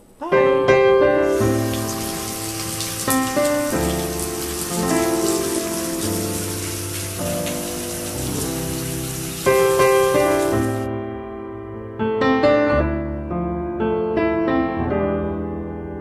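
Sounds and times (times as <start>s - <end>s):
soft piano music: 0.0s - 16.0s
water pouring from faucet: 1.0s - 10.9s.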